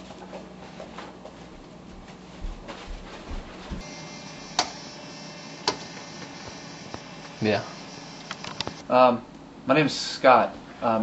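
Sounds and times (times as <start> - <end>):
sharp clicks: 5.6 - 7.4, 8.2 - 8.8.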